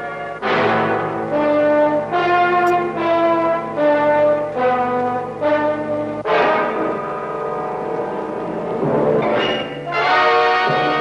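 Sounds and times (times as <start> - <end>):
orchestral brass chords: 0.0 - 11.0.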